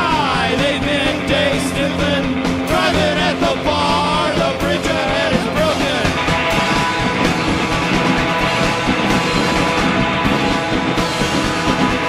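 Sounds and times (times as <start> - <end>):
person singing: 0.0 - 6.2
drum beat: 0.0 - 12.0
electric guitars: 0.0 - 12.0.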